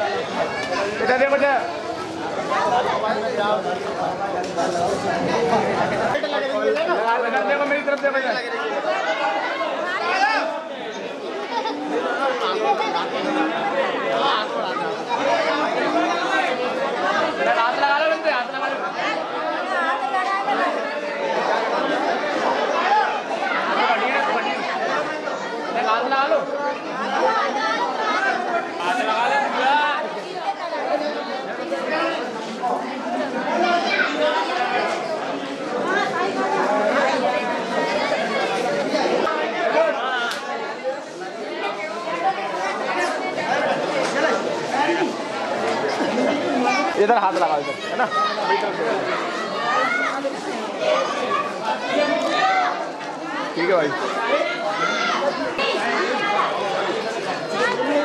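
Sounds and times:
crowd talking: 0:00.0 - 0:58.0.

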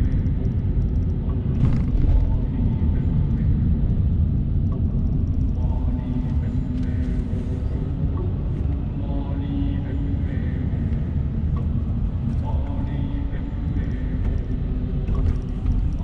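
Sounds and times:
car road and engine noise: 0:00.0 - 0:09.2, 0:09.9 - 0:16.0.

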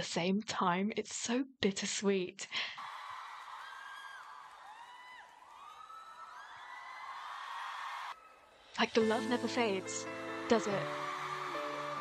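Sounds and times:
concert crowd cheering: 0:02.8 - 0:08.7, 0:10.4 - 0:12.0
high-pitched screams: 0:10.8 - 0:12.0.

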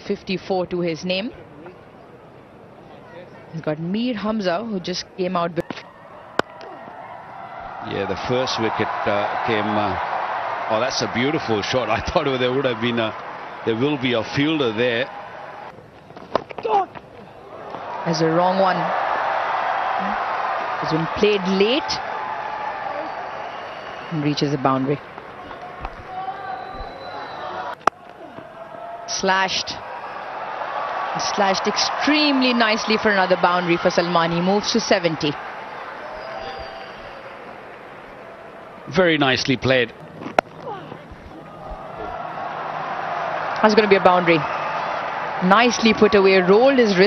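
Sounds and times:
stadium crowd noise: 0:00.0 - 0:47.0
cricket bat striking ball: 0:05.6 - 0:07.0, 0:27.8 - 0:28.6, 0:40.1 - 0:42.0.

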